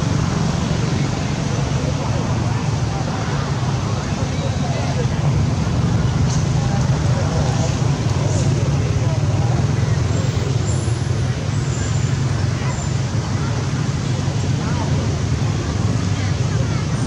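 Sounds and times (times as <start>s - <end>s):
faint indistinct voices: 0.0s - 17.0s.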